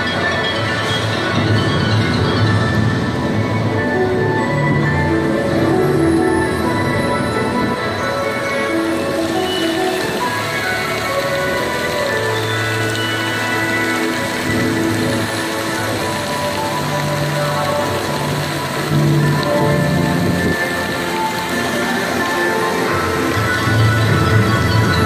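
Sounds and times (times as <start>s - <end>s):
long held low music notes: 0.0s - 25.0s
steady rain-like hiss: 0.0s - 25.0s.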